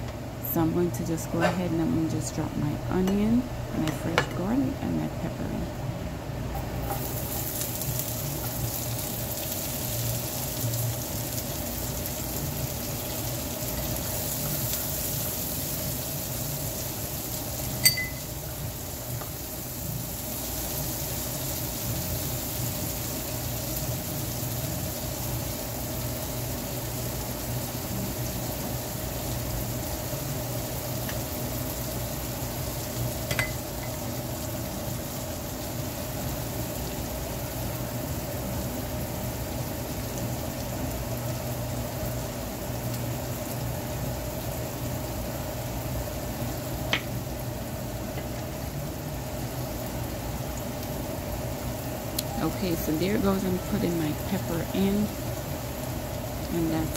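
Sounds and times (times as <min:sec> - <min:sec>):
onion and garlic sizzling in skillet: 0:06.3 - 0:56.9.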